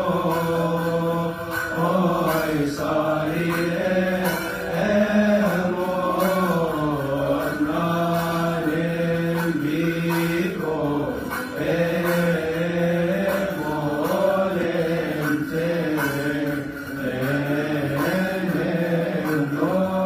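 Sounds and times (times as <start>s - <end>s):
liturgical chanting: 0.0s - 20.0s.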